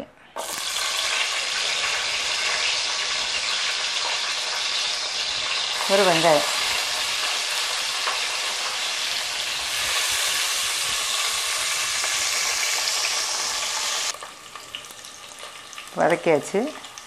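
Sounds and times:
onions sizzling in hot oil: 0.4 - 17.0.

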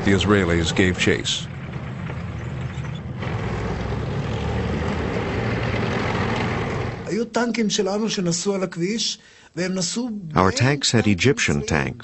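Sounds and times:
military vehicle engines running: 0.0 - 7.1.

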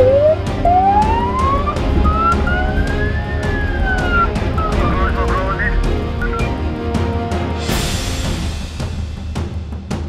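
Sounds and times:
police siren wailing: 0.0 - 5.9.

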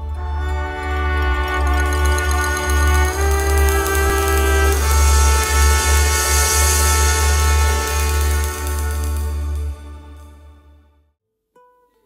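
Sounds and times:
dance band playing waltz: 0.0 - 10.7.

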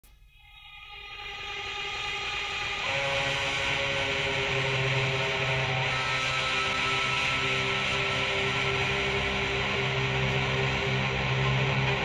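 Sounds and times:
hard rock music: 2.7 - 12.0.

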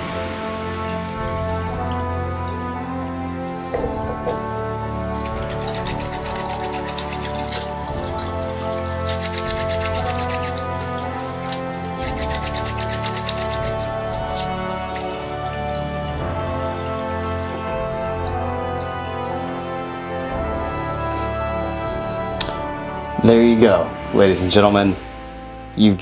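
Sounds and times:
background music: 0.0 - 26.0
hands scrubbing with gritty cleaner: 2.8 - 22.8
tap running: 3.7 - 18.8.

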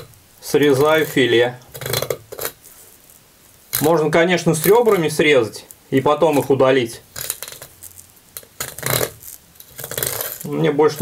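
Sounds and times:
knife scraping fish bones: 0.7 - 2.6, 7.2 - 7.7, 8.4 - 11.0.

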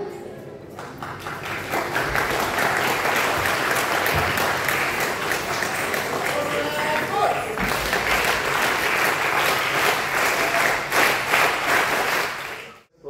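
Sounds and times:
audience applauding: 0.8 - 12.9.

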